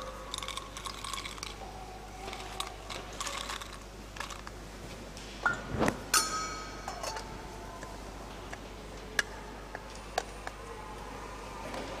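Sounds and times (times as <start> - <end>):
metal and glass vessels clinking: 0.0 - 1.6, 5.5 - 7.4
sharp ringing metallic clink: 6.1 - 7.2.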